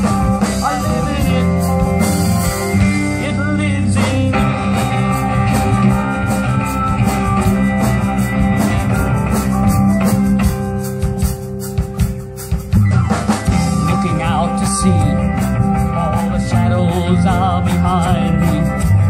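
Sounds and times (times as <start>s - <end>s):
folk-rock band playing: 0.0s - 19.0s.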